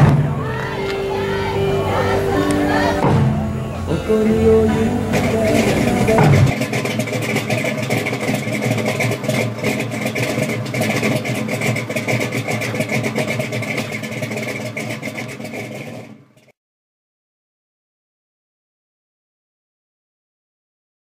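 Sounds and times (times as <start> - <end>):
engine running with crackle: 1.9 - 16.6.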